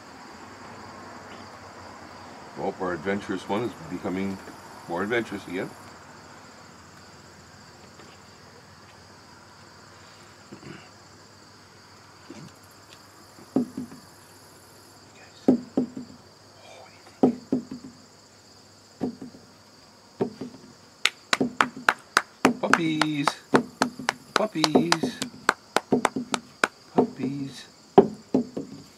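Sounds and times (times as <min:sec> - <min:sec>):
insects chirring: 0:00.0 - 0:28.9
soft knocks and taps: 0:13.4 - 0:14.0, 0:15.5 - 0:16.2, 0:17.2 - 0:18.0, 0:19.0 - 0:19.4, 0:20.2 - 0:27.3, 0:28.0 - 0:28.9.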